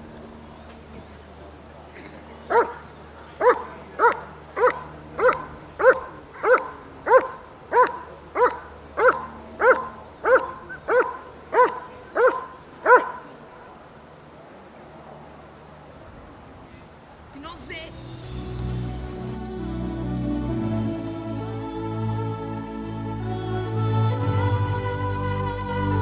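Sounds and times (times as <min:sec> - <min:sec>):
dog barking: 0:02.5 - 0:02.8, 0:03.4 - 0:13.3.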